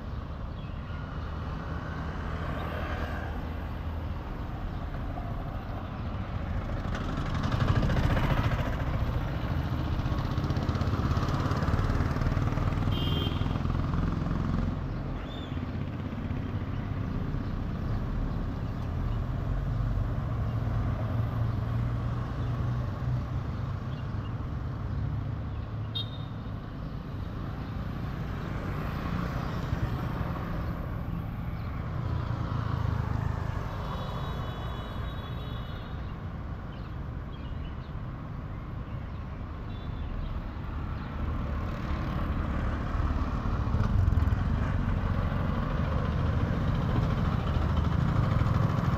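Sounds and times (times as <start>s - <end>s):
road and wind noise: 0.0s - 48.9s
scooter engine running: 7.0s - 12.3s.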